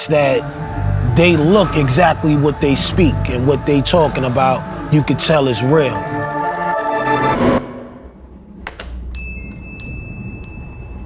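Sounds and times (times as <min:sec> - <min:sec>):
high ringing chime tones: 0:09.1 - 0:11.0.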